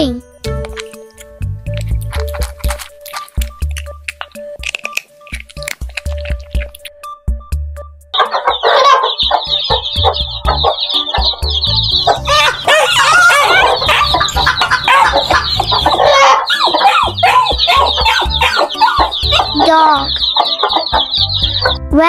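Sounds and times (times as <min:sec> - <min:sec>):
background music with low beat: 0:00.0 - 0:22.0
hen clucking: 0:08.2 - 0:21.8
baby chicks peeping: 0:08.2 - 0:22.0.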